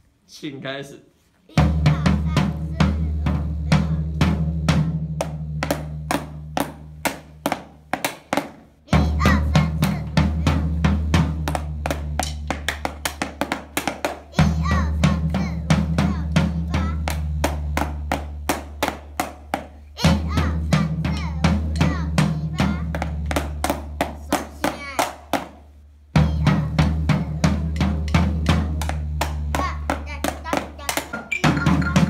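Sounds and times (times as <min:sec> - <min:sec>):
drum struck with sticks: 0:01.6 - 0:24.2, 0:26.2 - 0:32.0
sticks hitting drum pads: 0:05.2 - 0:08.6, 0:11.4 - 0:14.8
backing music with steady bass: 0:31.1 - 0:32.0.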